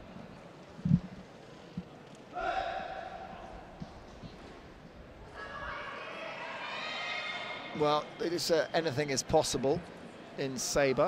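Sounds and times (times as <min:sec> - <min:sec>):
background hubbub: 0:00.0 - 0:11.0.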